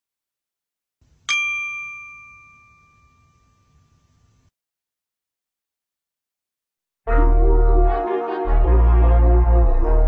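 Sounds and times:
bell-like chime ding: 1.3s - 4.4s.

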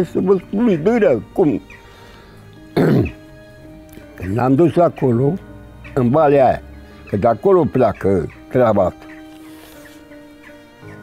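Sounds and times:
quiet background music: 0.0s - 11.0s
old man clearing his throat: 2.8s - 3.2s.

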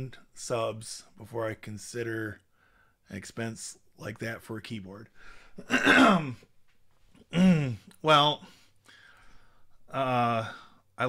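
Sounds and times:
man clearing his throat: 5.6s - 6.4s, 7.3s - 7.9s.

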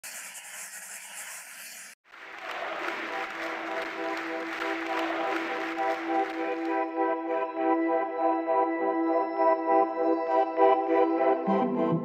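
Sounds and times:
crowd applause: 2.0s - 7.0s.

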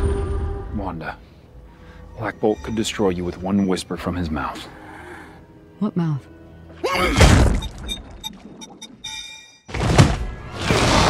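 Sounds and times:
film score: 0.0s - 11.0s
high ringing tone: 2.1s - 3.2s, 7.6s - 9.7s.

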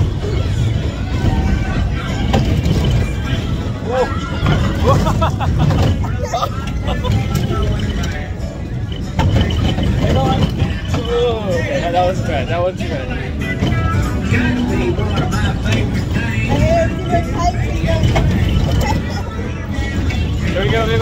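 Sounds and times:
ride music playing: 0.0s - 21.0s
spinning ride rumble: 0.0s - 21.0s
riders laughing: 3.9s - 8.2s.

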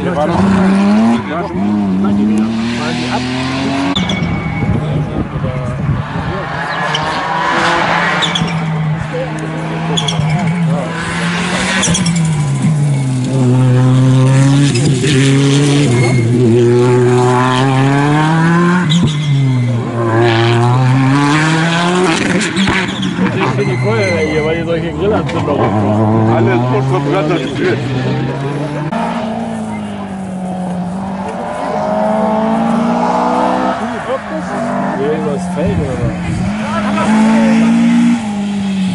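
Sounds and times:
rally car engine revving: 0.0s - 38.9s.

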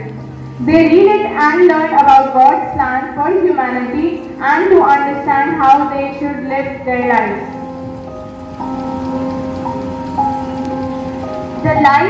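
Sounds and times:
soft pad chords: 0.0s - 12.0s
steady hiss: 7.1s - 12.0s.

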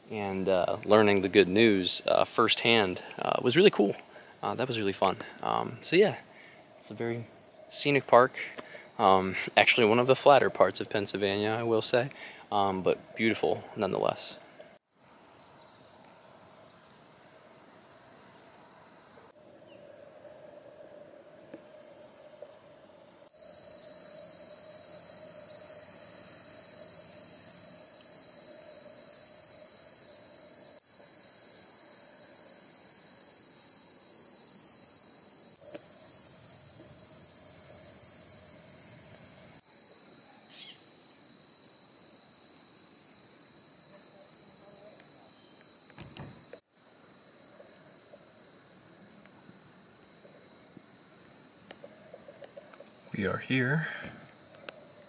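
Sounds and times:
insects chirring in grass: 0.0s - 55.0s.

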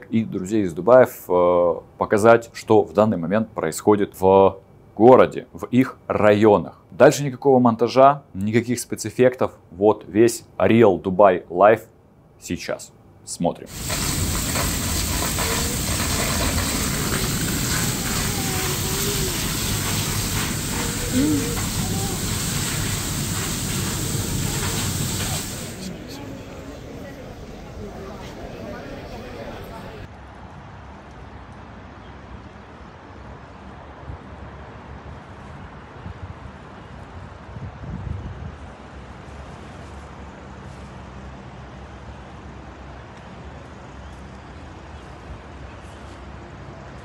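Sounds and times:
distant road traffic rumble: 13.7s - 30.1s
heavy rain pouring: 13.7s - 30.1s.

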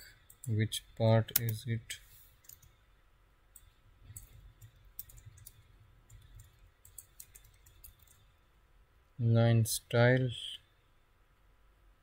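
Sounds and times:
computer keystroke clicks: 2.4s - 2.8s, 3.6s - 8.3s.

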